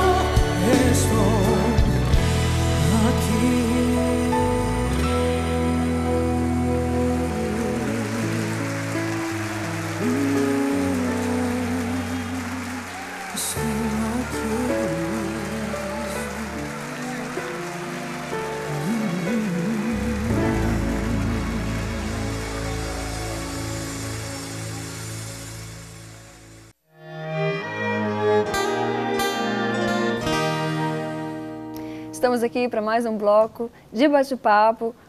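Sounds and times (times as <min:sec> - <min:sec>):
woman singing gospel song: 0:00.0 - 0:02.1, 0:10.0 - 0:17.1, 0:18.8 - 0:22.9
sustained backing chords: 0:00.0 - 0:33.0.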